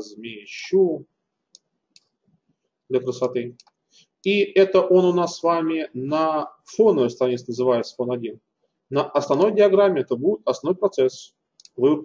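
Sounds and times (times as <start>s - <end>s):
computer mouse clicks: 3.5s - 3.8s, 11.6s - 11.8s.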